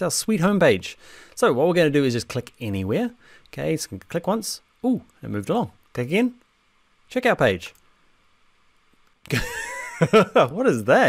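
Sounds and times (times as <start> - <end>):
man laughing: 9.3 - 10.7.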